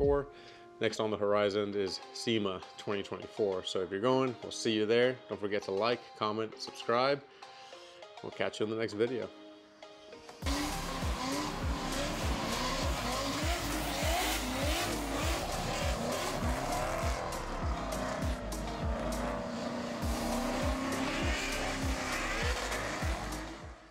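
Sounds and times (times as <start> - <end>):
music with steady beat: 10.3 - 23.9
tire squeal: 10.4 - 23.7
car engines revving: 10.4 - 23.9.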